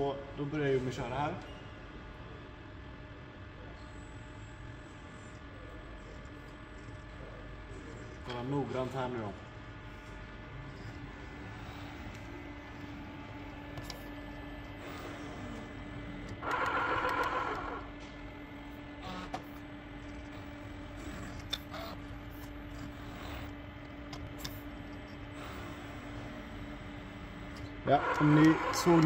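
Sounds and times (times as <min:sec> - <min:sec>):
robot drives humming: 0:10.0 - 0:18.0, 0:18.7 - 0:29.0.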